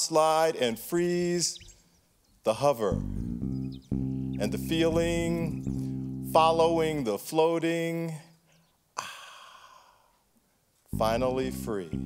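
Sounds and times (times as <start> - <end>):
man sighing: 9.0 - 10.2.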